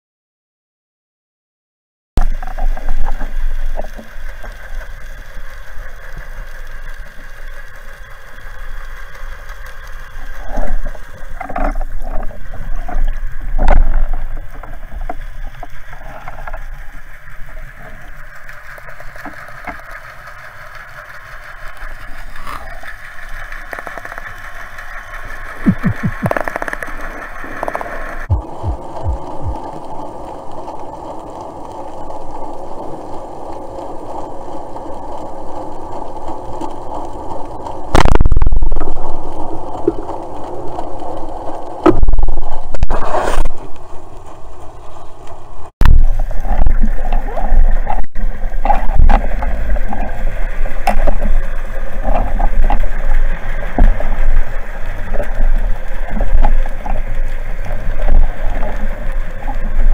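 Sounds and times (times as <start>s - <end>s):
underwater knocks and clicks: 2.2s - 29.9s, 37.8s - 43.9s, 44.8s - 59.9s
boat engines drone underwater: 2.2s - 59.9s.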